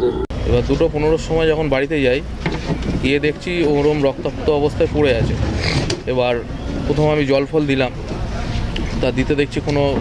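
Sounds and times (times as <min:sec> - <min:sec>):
person speaking outdoors: 0:00.0 - 0:10.0.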